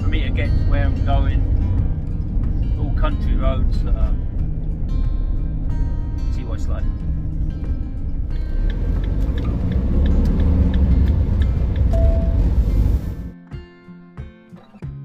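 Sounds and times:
road and engine rumble: 0.0 - 13.4
guitar music: 0.0 - 15.0.

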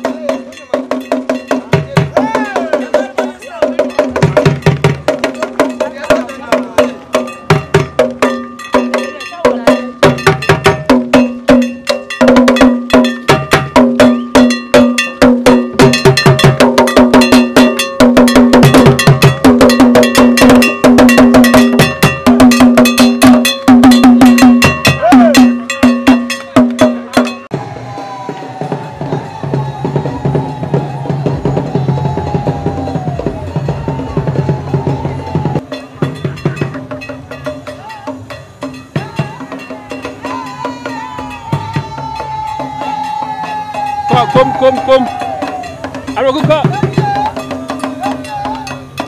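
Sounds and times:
drums beaten with sticks: 0.0 - 49.0.

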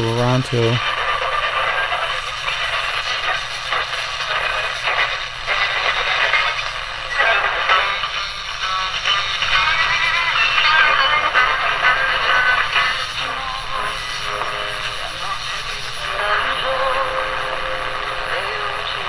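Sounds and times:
radio broadcast voice: 0.0 - 0.9
radio music: 0.0 - 19.0
radio static: 0.0 - 19.0.

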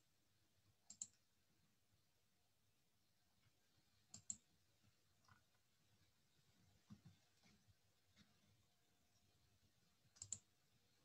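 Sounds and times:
computer mouse double-click: 0.9 - 1.2, 4.1 - 4.4, 10.2 - 10.4.

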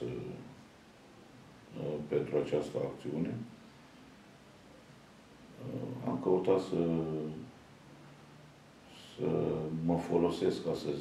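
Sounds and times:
man speaking: 0.0 - 0.6, 1.7 - 3.6, 5.6 - 7.5, 8.9 - 11.0.

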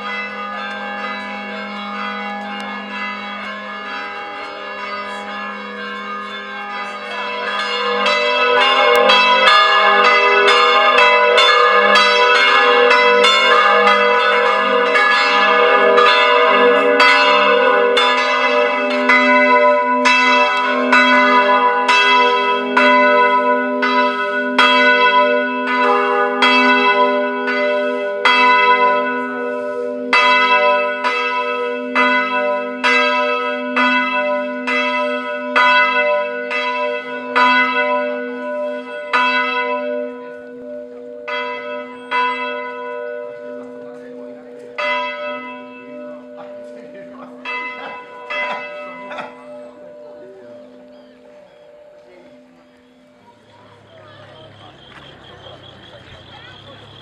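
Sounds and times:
church bells ringing: 0.0 - 57.0.

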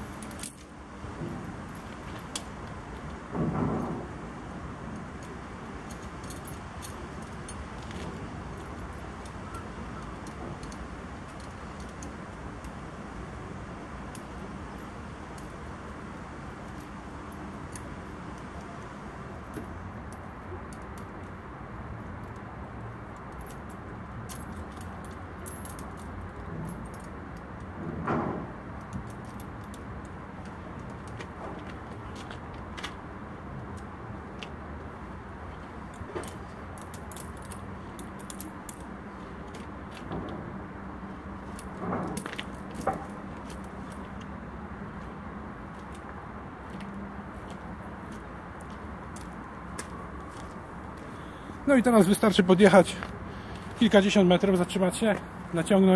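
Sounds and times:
metal chain rattles: 5.2 - 9.6, 23.2 - 27.2.

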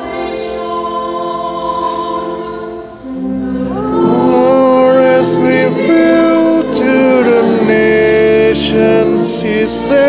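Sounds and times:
choir singing: 0.0 - 10.0.

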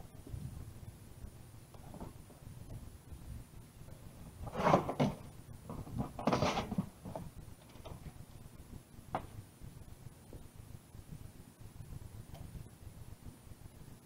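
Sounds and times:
cardboard box flaps rubbing: 4.4 - 7.0
cardboard scraping: 4.4 - 7.2.

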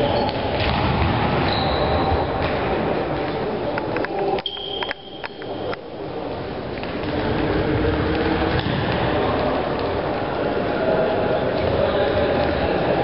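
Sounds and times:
echoing sports hall din: 0.0 - 13.0.

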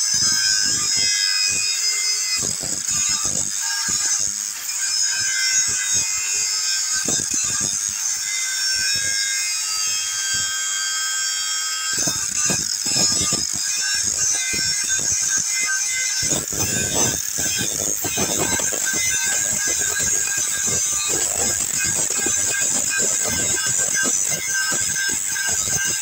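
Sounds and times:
angle grinder cutting steel: 0.0 - 26.0.

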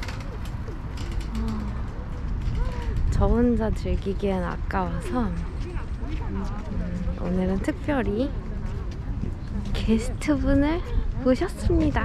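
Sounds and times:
clicks and rustling: 0.0 - 3.1
microphone wind rumble: 0.0 - 12.0.

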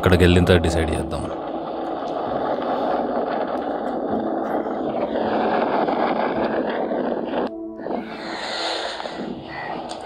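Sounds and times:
wind and road noise: 0.0 - 10.0.

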